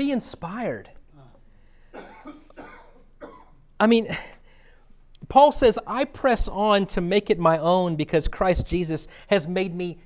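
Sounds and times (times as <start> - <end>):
person speaking: 0.0 - 1.5, 3.7 - 4.4
faint human cough: 1.9 - 4.3.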